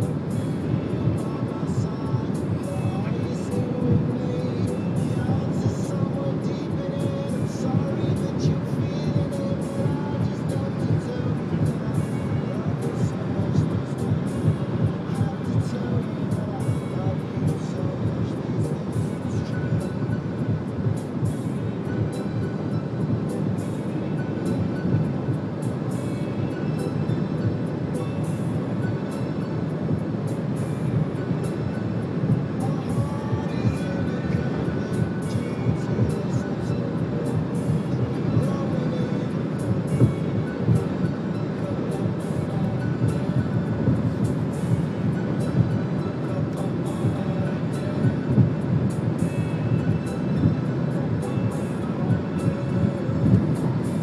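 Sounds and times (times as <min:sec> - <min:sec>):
car road and wind noise: 0:00.0 - 0:54.0
faint music: 0:00.0 - 0:54.0.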